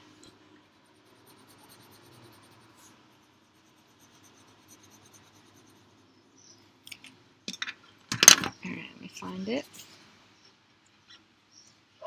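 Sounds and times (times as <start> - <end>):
colored pencil scratching on paper: 0.3 - 6.1, 9.2 - 10.0.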